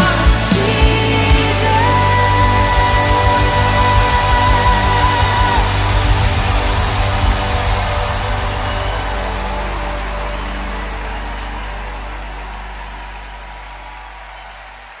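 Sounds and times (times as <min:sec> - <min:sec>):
deep held bass note: 0:00.0 - 0:13.9
hissing wash of sound: 0:02.5 - 0:11.1.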